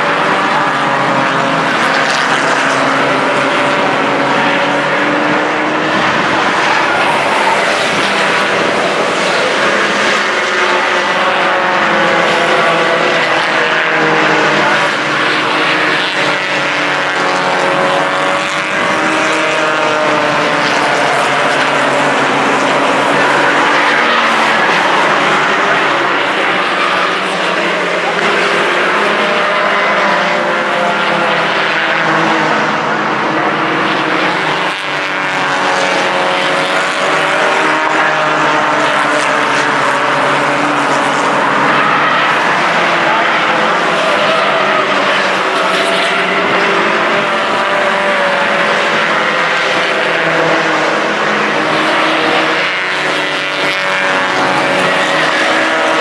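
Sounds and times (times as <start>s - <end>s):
racing car engines passing: 0.0s - 56.0s.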